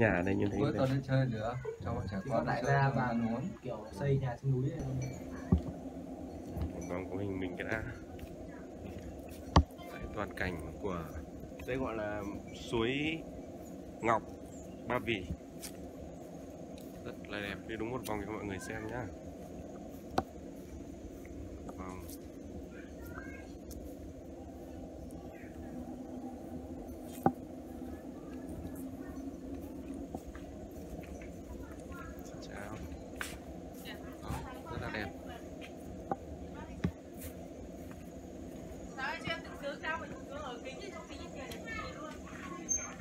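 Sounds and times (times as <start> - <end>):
faint distant voices: 0.0 - 43.0
low background hum: 4.2 - 43.0.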